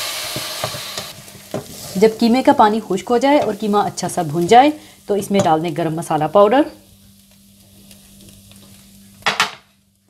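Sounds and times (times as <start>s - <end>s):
meat sizzling in a pot: 0.0s - 10.0s.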